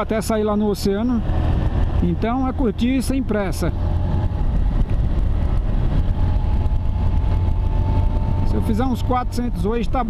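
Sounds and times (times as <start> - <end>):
motorcycle engine riding: 0.0 - 10.0
wind rumble: 0.0 - 10.0.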